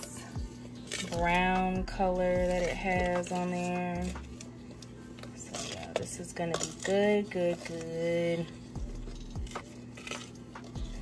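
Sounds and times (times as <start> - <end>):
faint background music: 0.0 - 11.0
metal spoon scraping a pot: 5.2 - 11.0.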